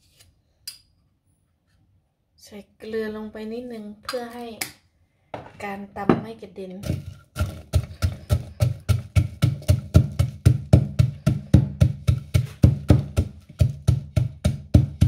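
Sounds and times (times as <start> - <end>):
pestle pounding in wooden mortar: 6.8 - 15.0.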